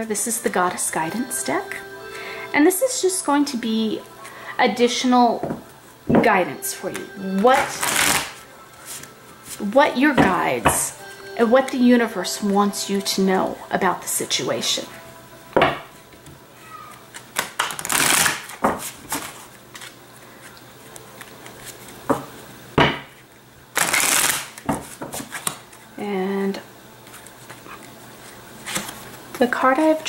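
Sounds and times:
cards being shuffled: 0:06.9 - 0:09.7, 0:16.8 - 0:22.1, 0:23.8 - 0:25.9, 0:27.0 - 0:30.0.

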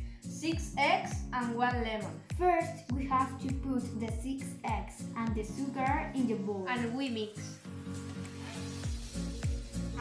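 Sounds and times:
background music: 0:00.0 - 0:10.0
bass drum beat: 0:08.9 - 0:10.0.

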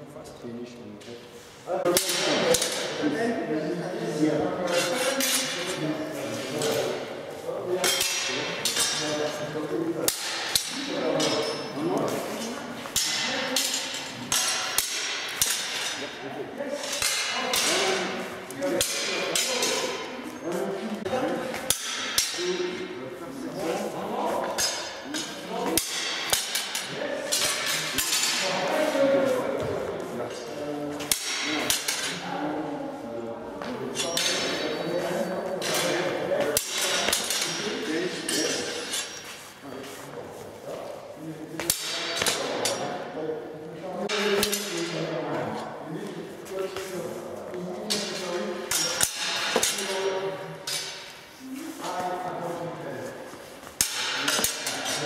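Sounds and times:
swords clashing: 0:01.9 - 0:03.0, 0:07.8 - 0:16.2, 0:16.8 - 0:20.3, 0:21.4 - 0:22.9, 0:24.4 - 0:28.7, 0:31.0 - 0:32.2, 0:33.9 - 0:34.9, 0:35.6 - 0:39.4, 0:41.6 - 0:43.0, 0:44.1 - 0:45.0, 0:47.8 - 0:51.2, 0:53.7 - 0:55.0.

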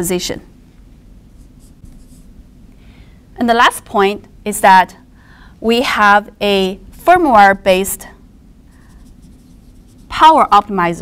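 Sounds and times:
marker scratching on whiteboard: 0:01.3 - 0:02.3, 0:08.7 - 0:10.8.

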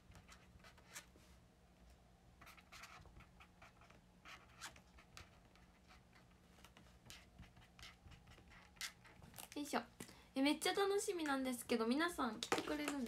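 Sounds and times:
pen scratching on paper: 0:00.1 - 0:01.1, 0:02.4 - 0:09.2.

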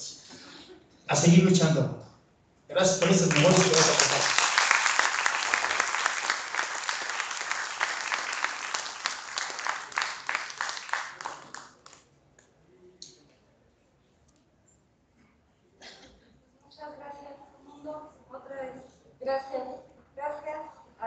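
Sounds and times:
audience applauding: 0:03.0 - 0:12.0.

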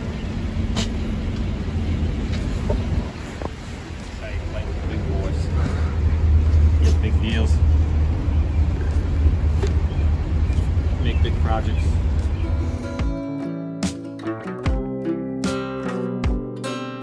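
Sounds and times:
wind rumbling on microphone: 0:00.0 - 0:12.8
passing road traffic: 0:00.0 - 0:14.0.

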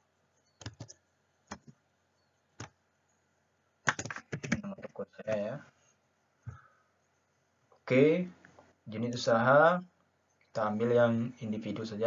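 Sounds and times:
computer keyboard typing: 0:00.6 - 0:01.8, 0:03.8 - 0:05.5.

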